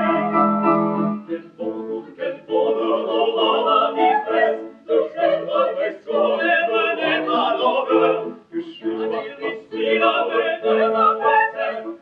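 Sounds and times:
operetta ensemble singing: 0.0 - 12.0.

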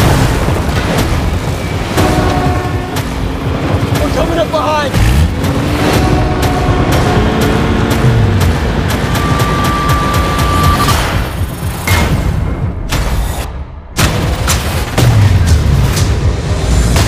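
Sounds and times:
vehicle noise: 0.0 - 13.5
trailer music with deep booms: 0.0 - 17.0.

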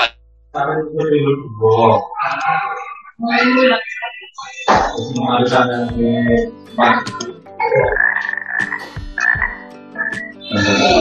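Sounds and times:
frog croaking: 1.7 - 11.0.

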